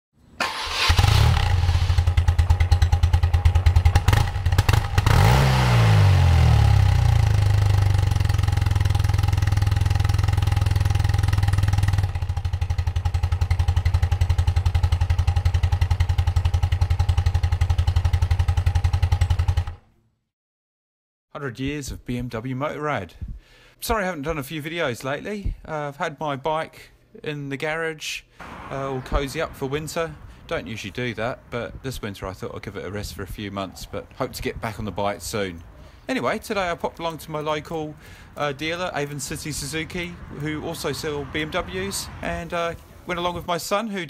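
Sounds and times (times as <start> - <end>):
motorcycle engine starting: 0.4 - 19.8, 28.4 - 42.8
motorcycle engine revving: 0.5 - 19.8, 38.3 - 42.5
motorcycle engine idling: 1.3 - 19.8.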